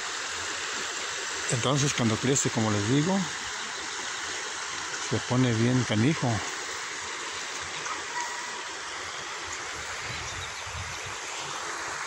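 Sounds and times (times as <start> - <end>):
river water running over stones: 0.0 - 12.0.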